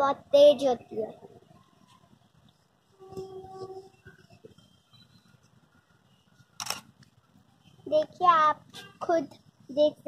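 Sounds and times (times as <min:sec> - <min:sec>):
camera shutter click: 0:06.6 - 0:06.9.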